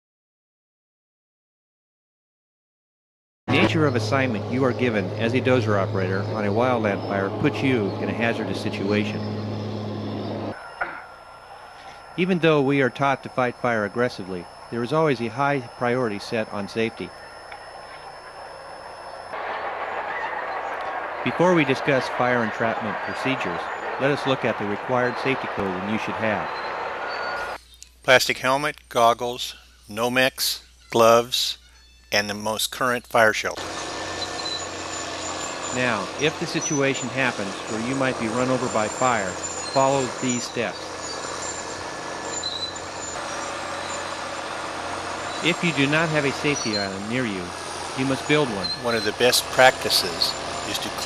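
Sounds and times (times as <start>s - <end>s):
diesel engine rumble: 3.5s - 10.6s, 11.8s - 27.6s, 33.6s - 51.0s.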